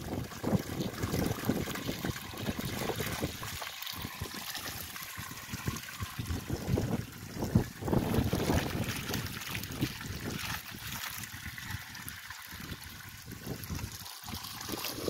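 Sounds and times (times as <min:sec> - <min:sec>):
water splashing onto ground: 0:00.0 - 0:15.0
wind gusting on microphone: 0:05.1 - 0:10.4, 0:11.3 - 0:15.0.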